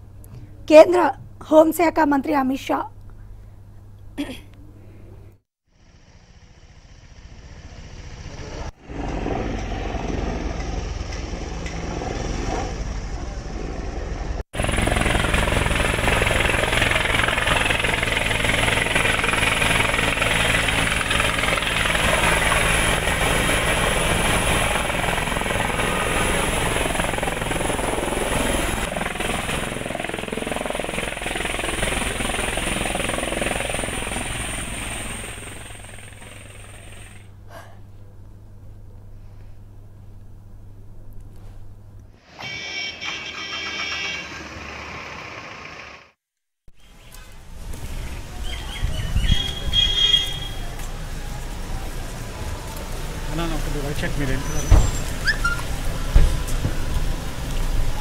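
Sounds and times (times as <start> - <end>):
helicopter turbine whine: 5.8 - 37.4, 49.4 - 58.0
helicopter rotor wash: 7.4 - 37.3, 50.6 - 58.0.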